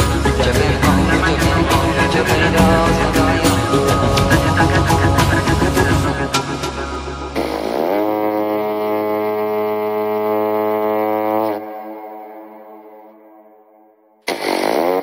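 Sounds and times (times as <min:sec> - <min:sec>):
psytrance music with beat: 0:00.0 - 0:07.9
sustained horn-like synth note: 0:07.4 - 0:15.0.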